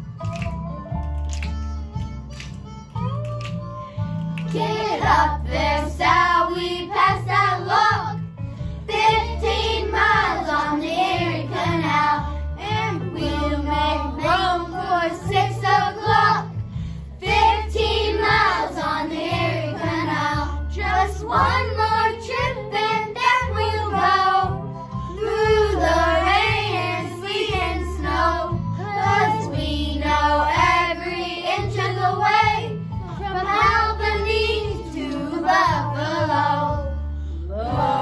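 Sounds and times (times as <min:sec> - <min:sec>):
instrumental accompaniment: 0:00.0 - 0:38.0
children's choir singing: 0:04.5 - 0:08.2, 0:08.9 - 0:16.5, 0:17.2 - 0:24.6, 0:25.2 - 0:36.9, 0:37.5 - 0:38.0.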